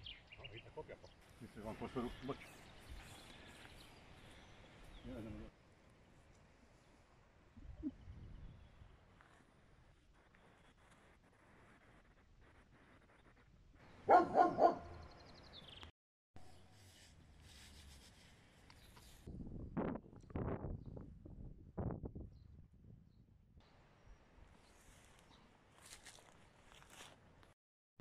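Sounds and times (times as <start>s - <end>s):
dog barking: 14.0s - 15.0s.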